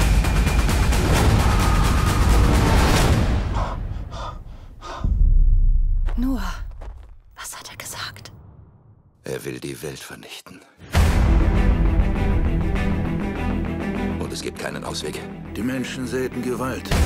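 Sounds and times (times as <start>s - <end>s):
breathy gasps and sighs: 3.4s - 5.2s
deep boom: 5.0s - 6.9s
whispers: 7.4s - 8.3s.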